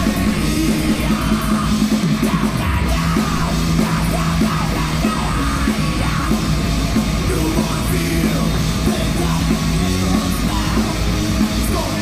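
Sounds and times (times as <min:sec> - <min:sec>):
heavy metal band playing live: 0:00.0 - 0:12.0.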